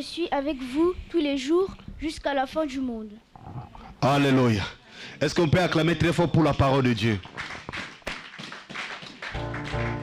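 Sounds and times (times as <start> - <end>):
congregation clapping: 6.7 - 10.0.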